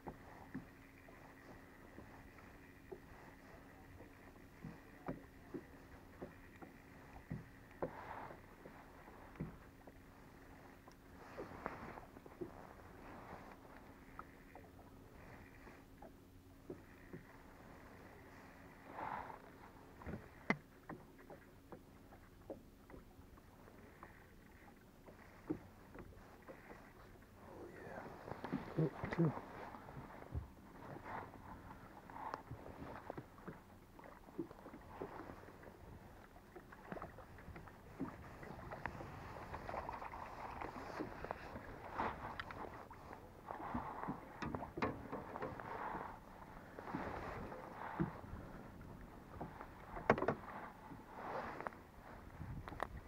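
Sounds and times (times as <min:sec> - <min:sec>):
faint steady hum: 0:00.0 - 0:53.0
small waves lapping against boat: 0:00.0 - 0:53.0.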